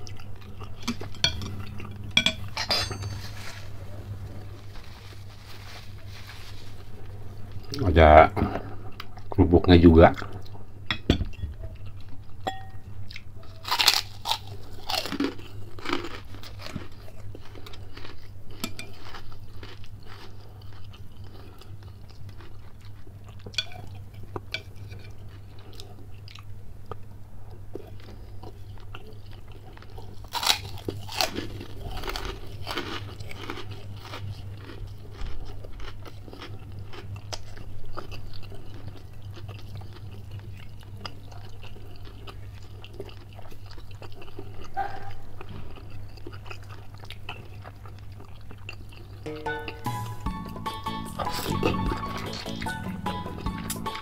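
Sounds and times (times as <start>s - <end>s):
cracker crunching and chewing: 0.0s - 2.1s, 13.0s - 49.3s.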